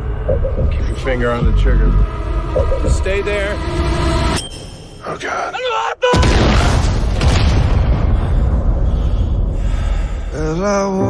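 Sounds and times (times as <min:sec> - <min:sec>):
explosion rumble and crackle: 0:06.2 - 0:10.3.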